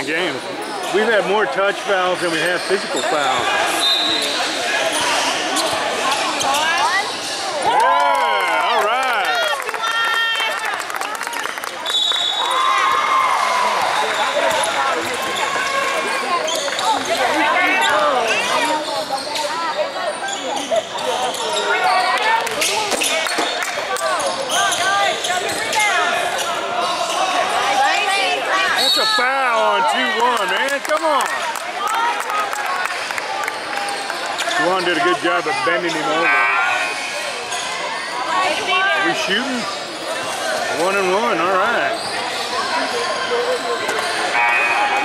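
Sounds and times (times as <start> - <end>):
chatter of people: 0.0 - 45.0
sneakers squeaking: 0.3 - 7.7, 13.6 - 29.2, 33.6 - 45.0.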